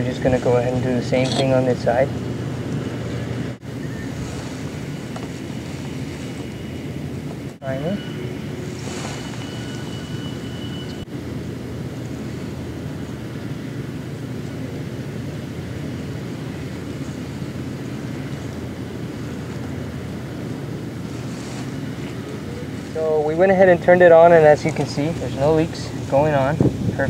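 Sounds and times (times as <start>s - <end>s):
low outdoor rumble: 0.0s - 27.0s.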